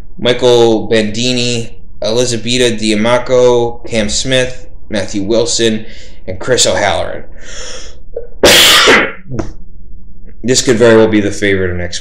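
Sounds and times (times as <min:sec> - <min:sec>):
man sneezing: 0:08.4 - 0:09.2.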